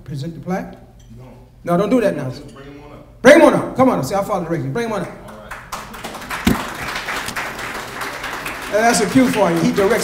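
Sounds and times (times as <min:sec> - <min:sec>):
audience clapping: 0:05.2 - 0:10.0
single thump: 0:06.5 - 0:06.7.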